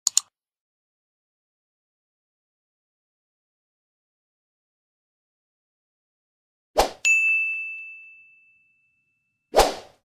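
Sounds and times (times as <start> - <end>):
bell ding: 7.0 - 9.4.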